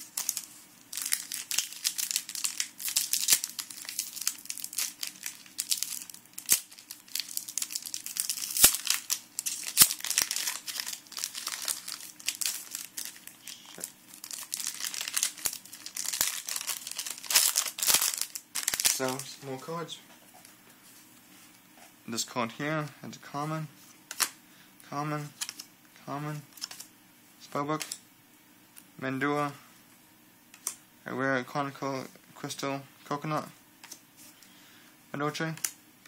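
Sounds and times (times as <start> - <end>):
foil wrapper crinkling and tearing: 0.0 - 19.3.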